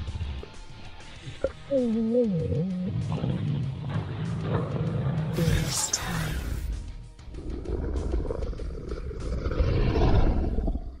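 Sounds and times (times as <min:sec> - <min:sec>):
background music: 0:00.0 - 0:11.0
deep monster growl: 0:02.0 - 0:11.0.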